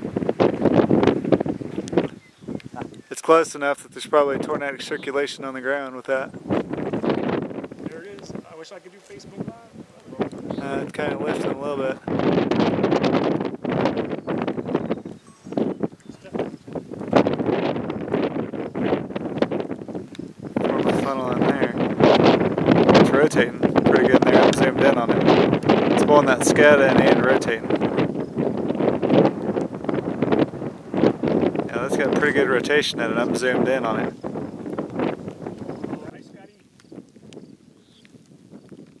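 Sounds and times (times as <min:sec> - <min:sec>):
gusty wind on microphone: 0:00.0 - 0:39.0.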